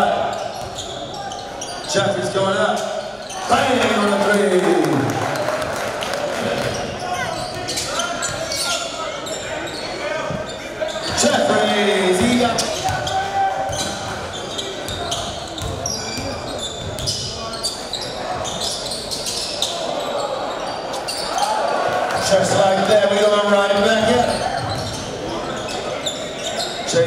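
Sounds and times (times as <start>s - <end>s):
crowd chatter and shouting: 0.0s - 27.0s.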